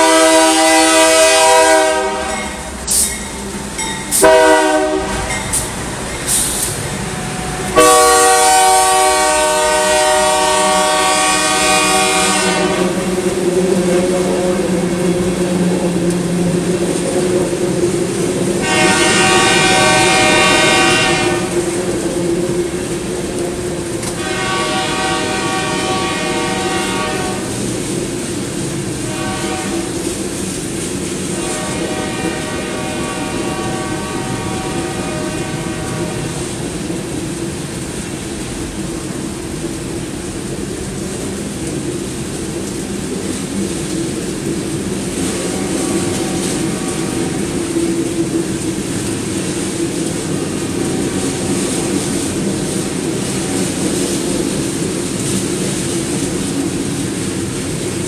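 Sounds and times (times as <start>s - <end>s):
train air horn blasts: 0.0s - 2.7s, 4.1s - 13.2s, 18.6s - 22.0s, 24.0s - 27.6s, 29.0s - 30.0s, 31.3s - 36.6s, 45.2s - 47.8s
locomotive engine drone: 0.0s - 58.0s.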